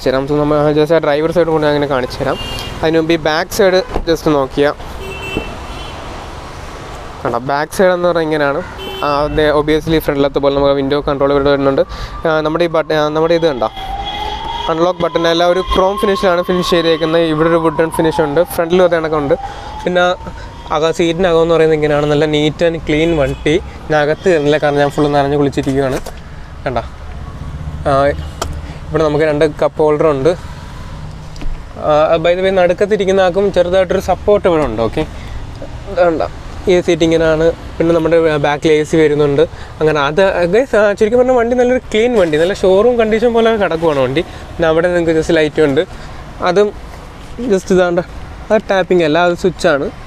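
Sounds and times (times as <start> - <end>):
road traffic hum: 0.0 - 50.0
man speaking: 7.2 - 13.9, 14.6 - 26.0.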